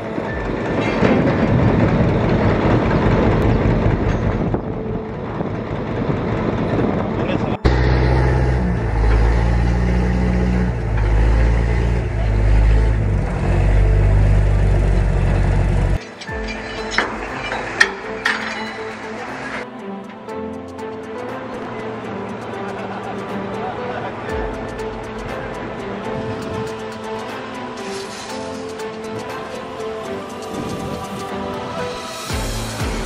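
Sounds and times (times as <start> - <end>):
boat motor running: 0.0 - 16.0
deep engine rumble: 0.0 - 16.0
water and wind noise: 30.2 - 32.4.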